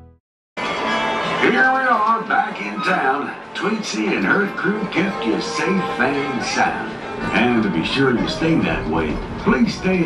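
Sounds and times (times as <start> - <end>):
voice over loudspeaker: 1.4 - 10.0.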